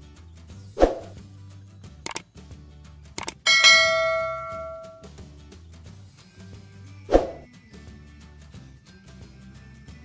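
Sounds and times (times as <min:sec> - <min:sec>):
quick clicks: 0:03.2 - 0:03.4
bright bell ding: 0:03.4 - 0:05.1.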